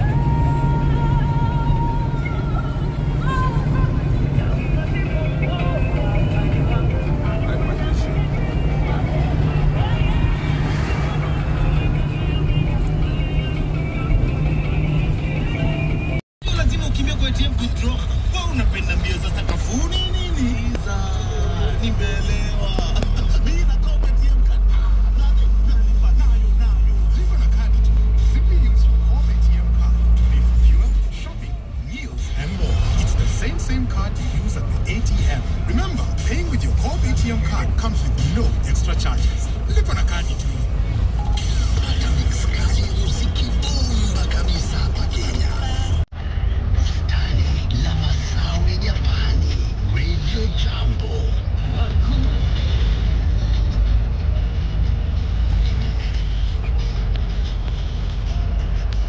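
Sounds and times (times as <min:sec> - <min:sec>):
car engine and road noise: 0:00.0 - 0:59.0
deep steady drone: 0:00.0 - 0:59.0.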